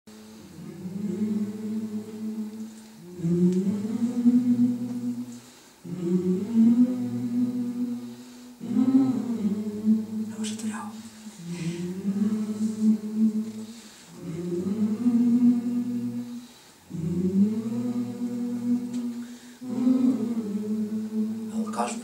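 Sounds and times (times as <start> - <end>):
low wordless humming: 0.1 - 22.0.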